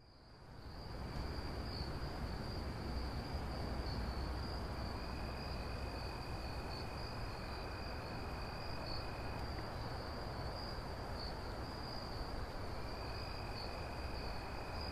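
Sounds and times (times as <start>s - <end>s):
high insect trill: 0.0s - 14.9s
lower insect trill: 0.0s - 14.9s.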